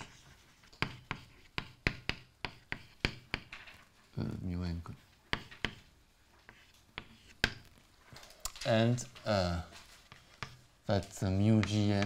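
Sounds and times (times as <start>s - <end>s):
chalk tapping on blackboard: 0.0s - 3.7s, 5.2s - 7.7s, 10.0s - 12.0s.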